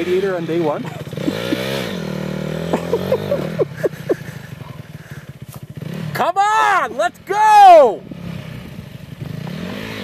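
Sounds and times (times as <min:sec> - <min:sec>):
dirt bike engine revving and idling: 0:00.0 - 0:10.0.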